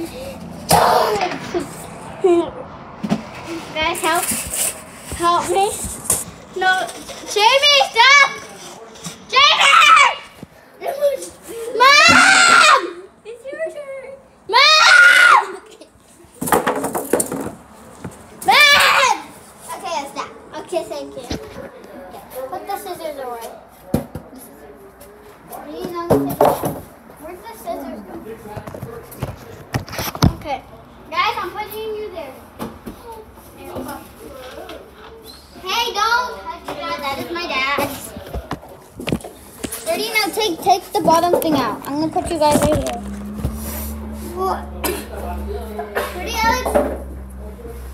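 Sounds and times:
children squealing and shrieking: 0.0 - 1.6, 9.3 - 10.4, 11.2 - 13.1, 14.5 - 15.8, 18.4 - 19.4
children chattering: 5.0 - 16.5, 17.8 - 23.7, 27.1 - 47.9.

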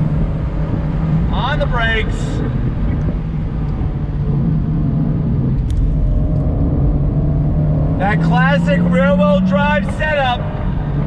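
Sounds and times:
car engine running: 0.0 - 11.0
road noise: 0.0 - 11.0.

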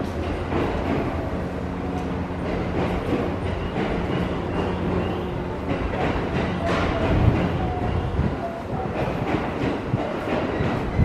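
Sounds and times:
train rumbling past: 0.0 - 11.0.

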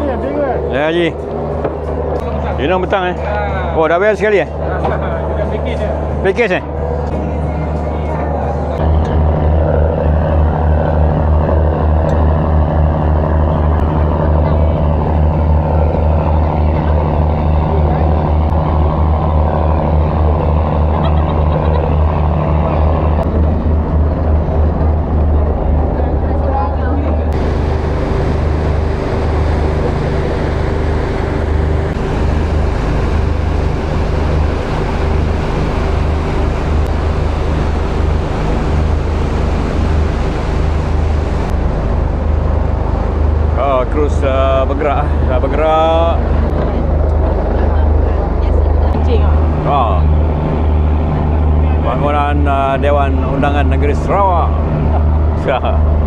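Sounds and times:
boat engine droning: 0.0 - 56.0
water rushing along hull: 0.0 - 56.0.

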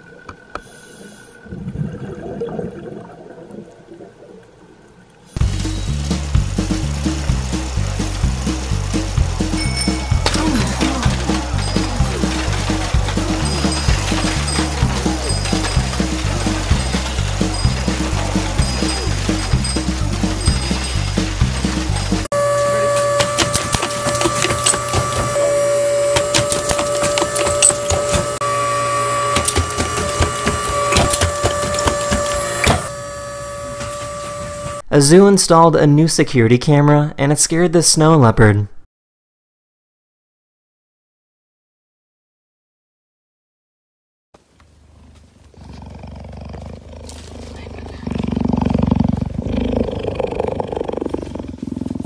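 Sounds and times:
music with repeating bass line: 5.4 - 22.3
two-note hum: 5.4 - 34.8.

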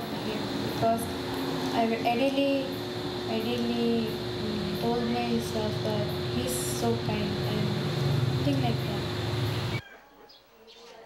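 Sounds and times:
background hiss and hum: 0.0 - 9.8.

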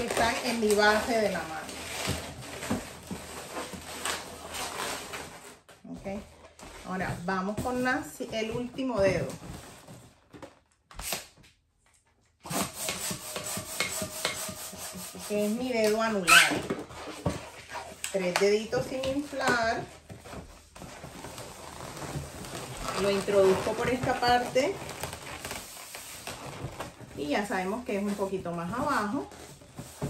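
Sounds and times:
latex balloons rubbing together: 0.0 - 10.1, 12.4 - 18.0, 18.9 - 30.0.

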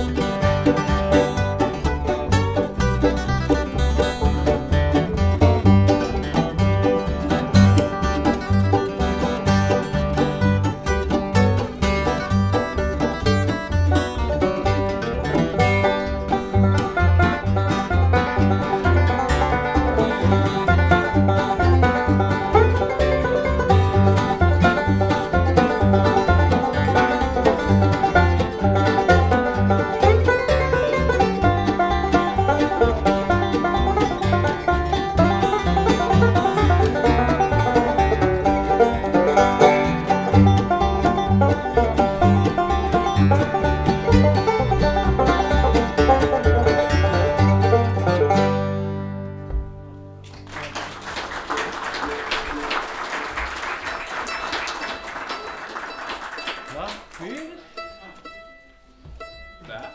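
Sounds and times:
upright bass plucking: 0.0 - 50.4, 52.1 - 59.9
bluegrass band playing: 0.0 - 59.9.

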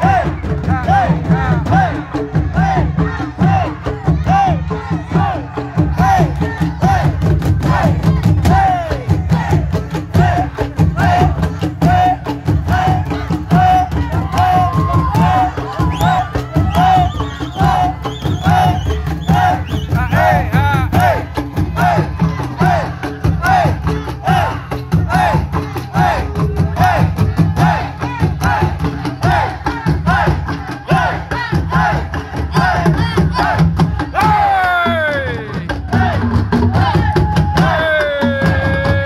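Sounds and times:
barrel drums beaten with sticks: 0.0 - 39.0.

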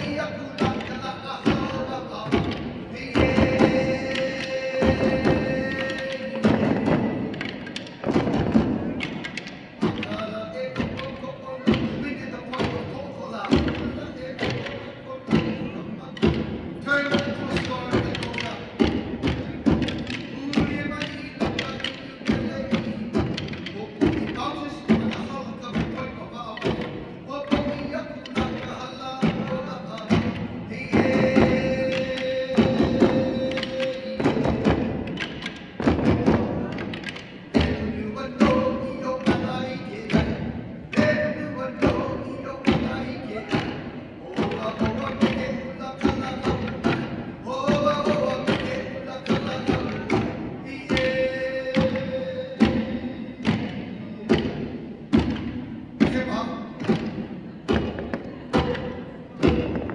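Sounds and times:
chanting: 0.0 - 59.9
wooden sticks struck together: 0.0 - 59.9.

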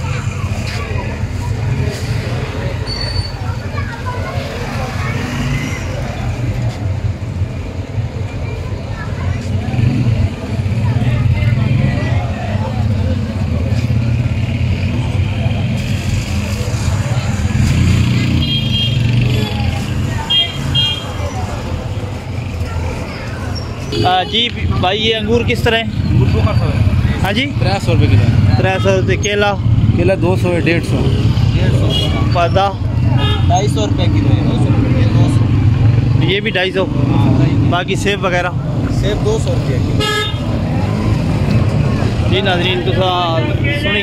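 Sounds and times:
motorcycle engines running: 0.0 - 44.0
men talking: 23.9 - 44.0.

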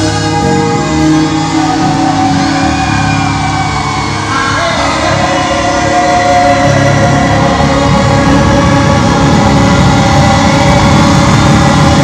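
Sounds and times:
band accompaniment: 0.0 - 12.0
men singing long notes: 0.0 - 12.0.

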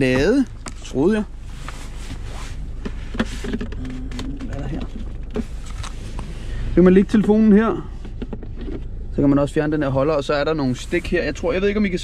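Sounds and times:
low car cabin hum: 0.0 - 12.0.

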